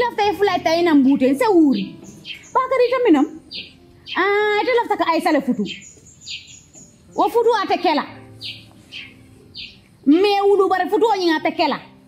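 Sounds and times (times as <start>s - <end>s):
woman speaking: 0.0s - 3.4s, 4.1s - 5.8s, 7.2s - 8.2s, 10.0s - 12.0s
small bird chirping: 1.4s - 10.3s.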